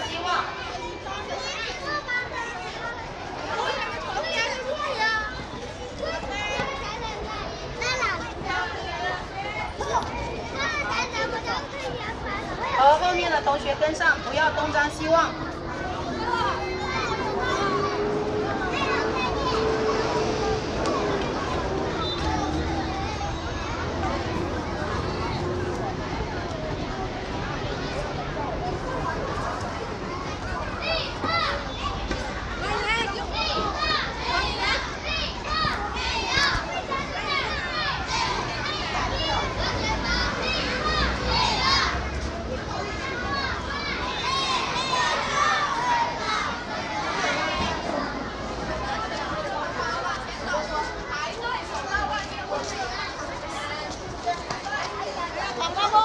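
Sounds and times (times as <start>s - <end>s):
children chattering and calling: 0.0s - 56.0s.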